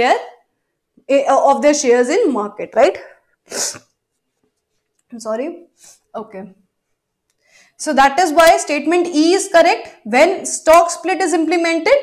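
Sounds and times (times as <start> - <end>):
woman sneezing: 3.5 - 3.9.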